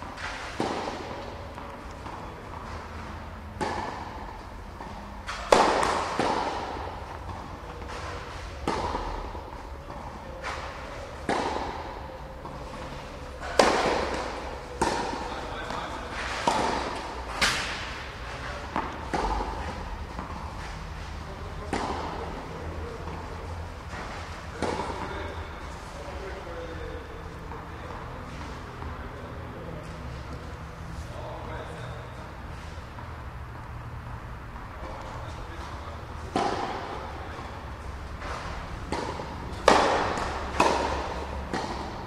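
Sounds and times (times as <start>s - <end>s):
tennis ball bouncing: 0.0s - 25.4s, 35.3s - 42.0s
racket hitting tennis ball: 0.0s - 25.8s, 34.6s - 42.0s.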